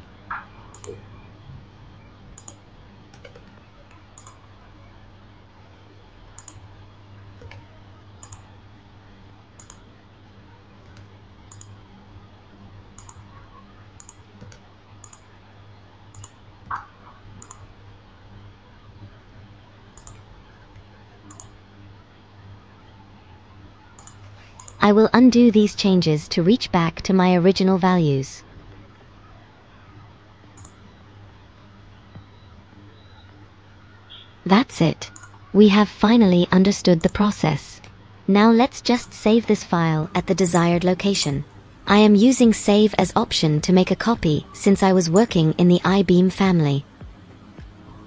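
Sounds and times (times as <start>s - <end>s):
computer mouse clicks: 0.7s - 1.0s, 2.4s - 4.4s, 6.4s - 6.6s, 8.2s - 8.4s, 9.6s - 9.8s, 10.8s - 11.7s, 13.0s - 13.2s, 14.0s - 15.3s, 16.1s - 16.4s, 17.4s - 17.6s, 20.0s - 20.2s, 21.3s - 21.5s, 24.0s - 24.8s, 30.6s - 30.8s, 35.2s - 35.4s, 40.2s - 41.4s
steady low hum: 39.9s - 48.0s
key presses: 40.2s - 41.4s.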